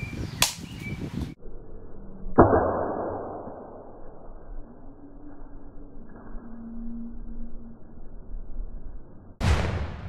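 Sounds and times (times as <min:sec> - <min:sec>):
sudden hit with rush of sound: 0:09.4 - 0:10.0.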